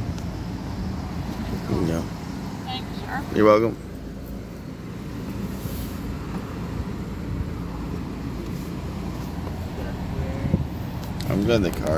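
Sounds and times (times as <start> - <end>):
car engine and tyres rumbling: 0.0 - 11.9.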